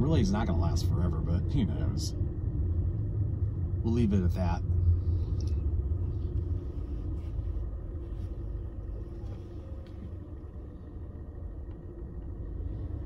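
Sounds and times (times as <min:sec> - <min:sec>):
car engine rumble and road noise: 0:00.0 - 0:13.0.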